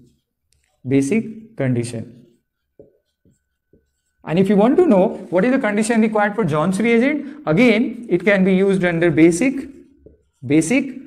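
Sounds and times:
marker writing on whiteboard: 0.0 - 11.0.

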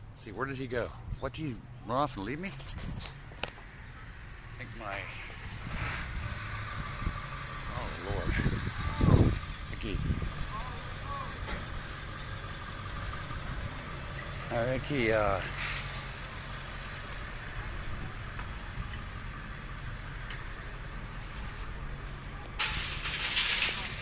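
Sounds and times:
shopping carts rolling on asphalt: 17.0 - 24.0
shopping carts clattering: 22.6 - 24.0.

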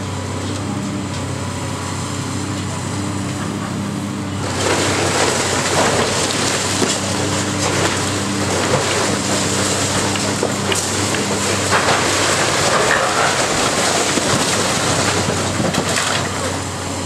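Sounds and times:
excavator engine and hydraulics humming: 0.0 - 17.0
masonry breaking and debris falling: 4.5 - 16.6.

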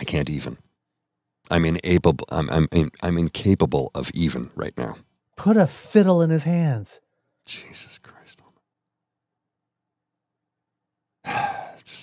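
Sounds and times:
man sighing heavily: 11.2 - 11.9.

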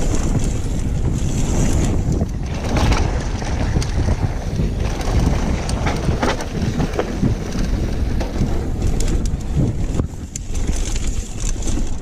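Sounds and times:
bike clicks and rattles: 0.0 - 12.0
bike tyres on loose gravel: 0.0 - 12.0
wind buffeting microphone: 0.0 - 12.0.

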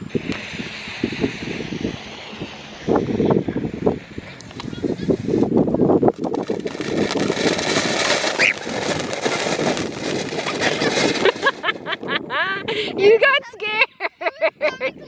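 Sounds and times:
firework hissing and crackling: 0.0 - 12.1.

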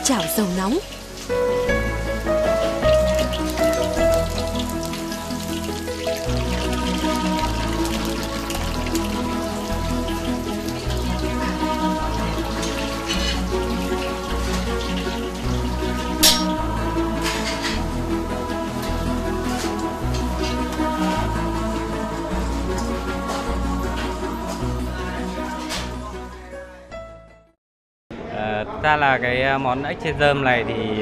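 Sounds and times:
deep-frying crackle in oil: 0.0 - 16.3
background music with bass: 0.0 - 27.5.

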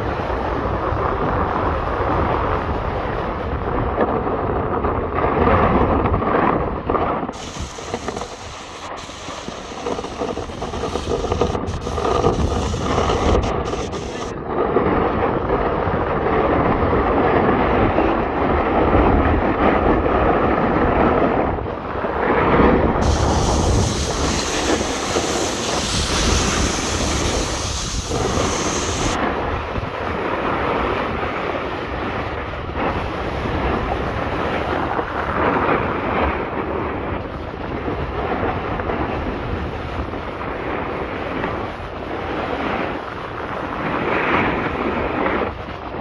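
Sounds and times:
wind rushing over microphone: 0.0 - 46.0
skis scraping on snow: 4.8 - 46.0.

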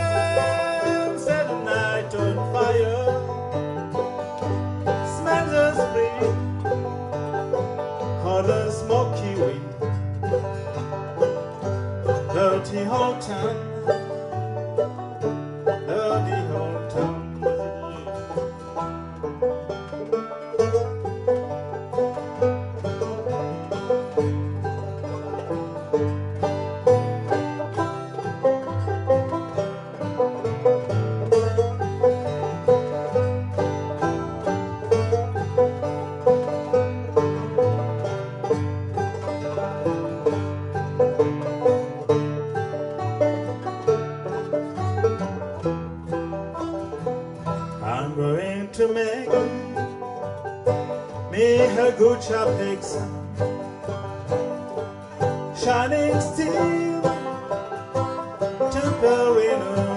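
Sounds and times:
acoustic guitar chords: 0.0 - 59.9
banjos picking: 0.0 - 59.9.

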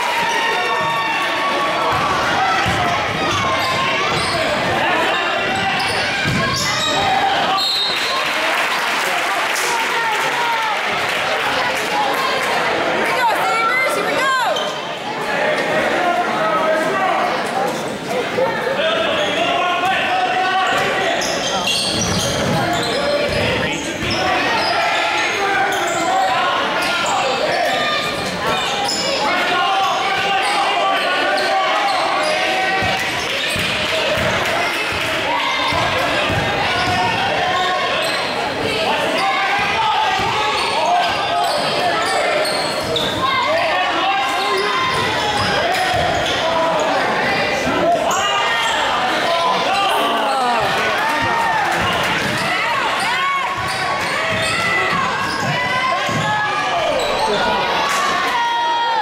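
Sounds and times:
voices of players and spectators: 0.0 - 59.0.

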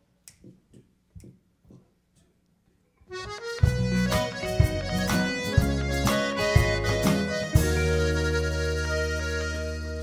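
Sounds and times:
country band playing: 3.1 - 10.0.

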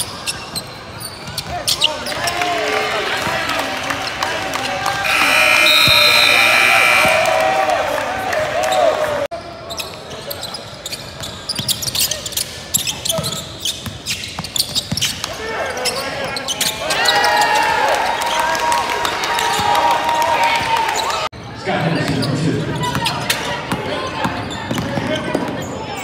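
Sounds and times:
sneakers squeaking on hardwood: 0.0 - 2.2, 9.7 - 16.7
players' voices: 1.2 - 10.9
sustained high tones: 5.1 - 7.6.

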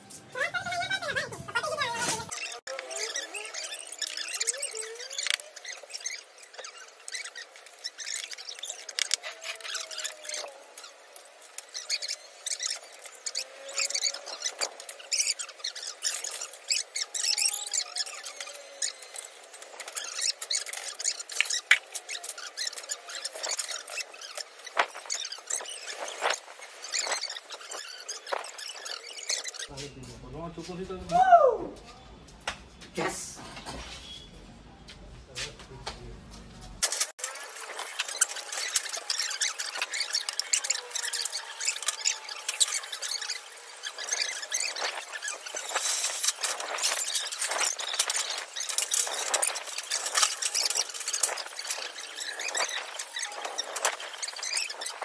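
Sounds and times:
high-pitched sped-up voices: 0.2 - 7.4.

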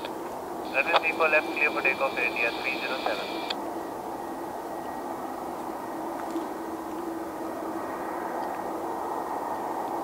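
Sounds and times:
jet engines running at low power: 0.0 - 10.0.

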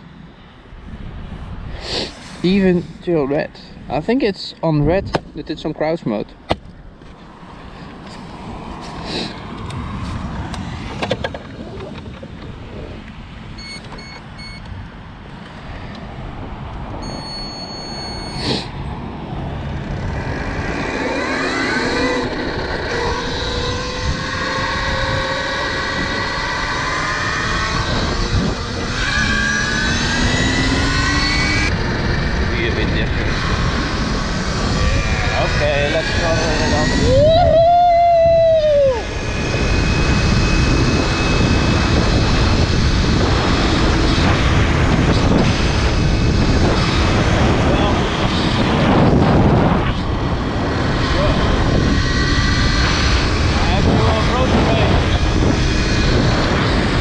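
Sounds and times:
wind and road noise: 0.0 - 57.0
electric motor whining: 19.6 - 37.4, 39.0 - 57.0.

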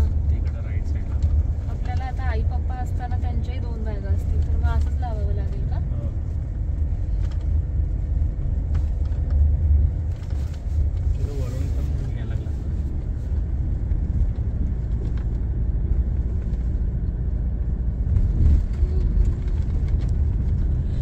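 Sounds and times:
car interior road rumble: 0.0 - 21.0.

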